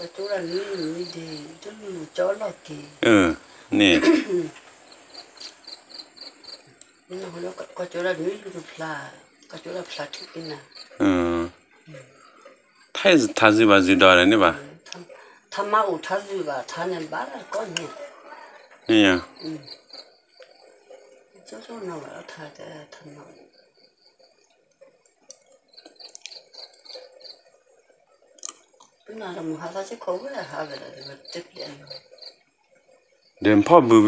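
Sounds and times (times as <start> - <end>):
cricket chirping: 0.0 - 34.0
person saying eh: 3.0 - 4.0, 11.0 - 11.5.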